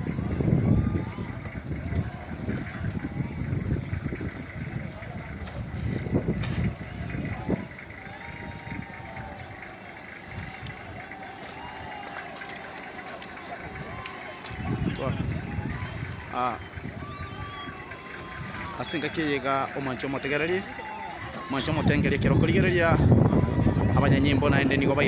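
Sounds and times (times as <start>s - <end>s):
low rumbling: 0.0s - 25.0s
people talking and calling out: 0.0s - 25.0s.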